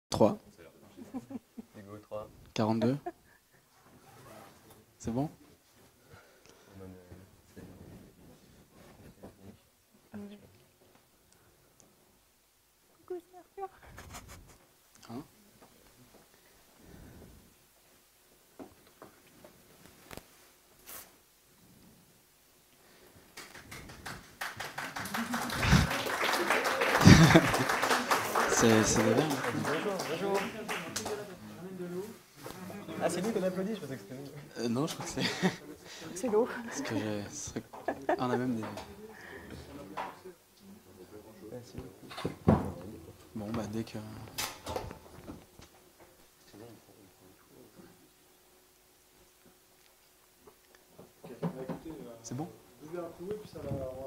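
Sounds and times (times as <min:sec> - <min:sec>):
audience applause: 0:23.4 - 0:31.4.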